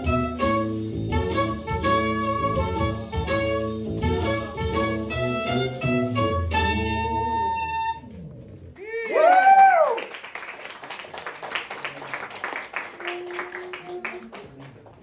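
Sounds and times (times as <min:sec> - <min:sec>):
small jazz group playing: 0:00.0 - 0:08.7
audience applause: 0:09.0 - 0:15.0.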